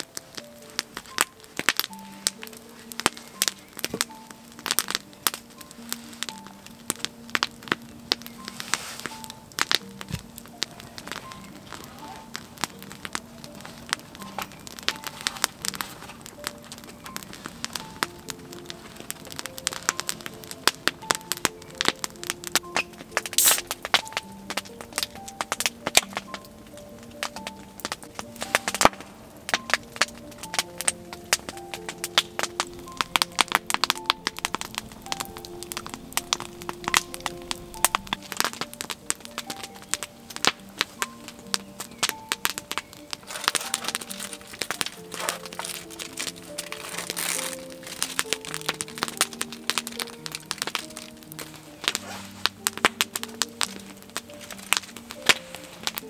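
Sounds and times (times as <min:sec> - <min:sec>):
log fire crackling and popping: 0:00.0 - 0:56.0
soft background music: 0:00.0 - 0:56.0.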